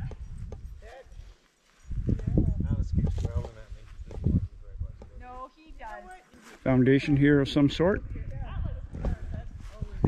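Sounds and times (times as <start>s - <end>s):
footsteps on grass and dirt: 0.0s - 5.2s, 5.8s - 6.8s, 9.0s - 10.0s.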